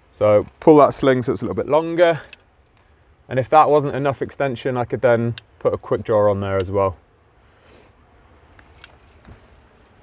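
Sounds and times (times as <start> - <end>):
handling of climbing gear: 7.6 - 10.0
carabiner clicking: 8.6 - 9.4.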